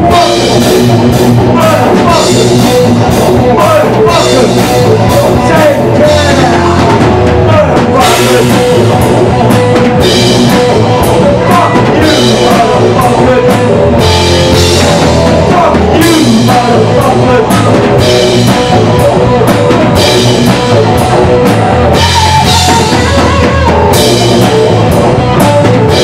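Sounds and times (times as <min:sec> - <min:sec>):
bass guitar: 0:00.0 - 0:26.0
distorted electric guitar: 0:00.0 - 0:26.0
drum kit beat: 0:00.0 - 0:26.0.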